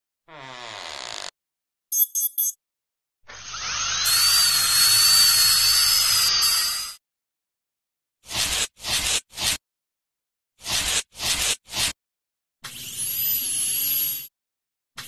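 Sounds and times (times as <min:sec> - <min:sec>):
dental drill whine: 0:03.3 - 0:07.0.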